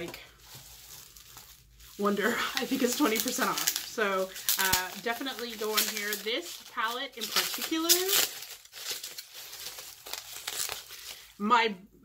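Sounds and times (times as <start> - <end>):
packaging crinkling: 0.0 - 11.4.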